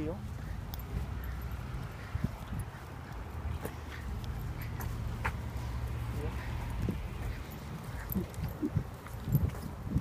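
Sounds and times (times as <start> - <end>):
soft footsteps: 0.0 - 10.0.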